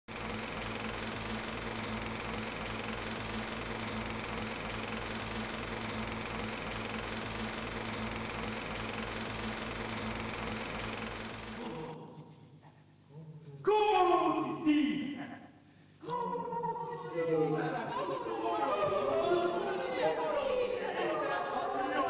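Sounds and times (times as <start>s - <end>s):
tape machine whirring: 0.1s - 12.1s
low hum: 0.1s - 13.6s.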